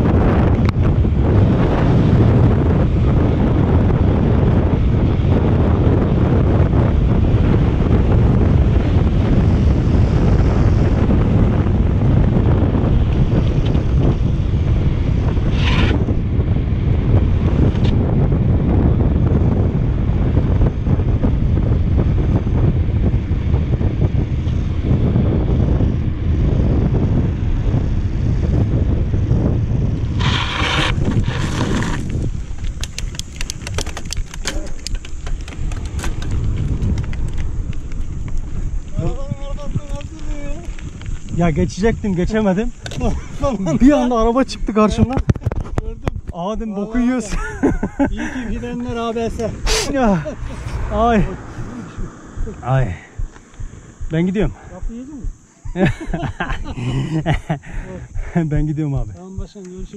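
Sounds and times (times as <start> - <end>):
wind buffeting microphone: 0.0 - 59.9
bike tyres crunching on gravel: 27.4 - 54.0
short hiss: 49.6 - 50.8.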